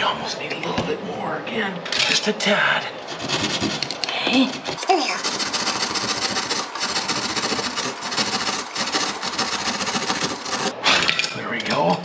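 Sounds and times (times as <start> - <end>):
hand saw cutting drywall: 3.1 - 10.8.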